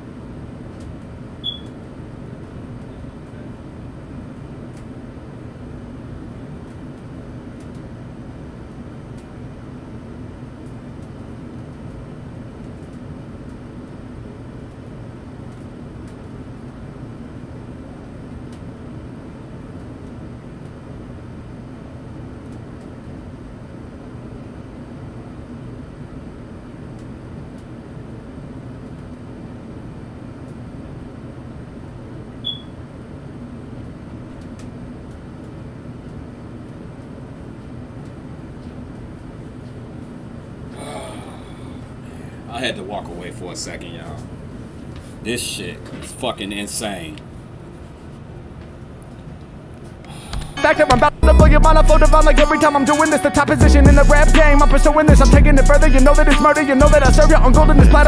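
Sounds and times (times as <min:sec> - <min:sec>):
room hum and hiss: 0:00.0 - 0:58.0.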